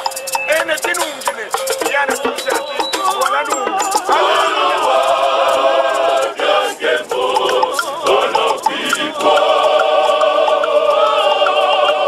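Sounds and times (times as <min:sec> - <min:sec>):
men's choir singing: 0:01.6 - 0:12.0.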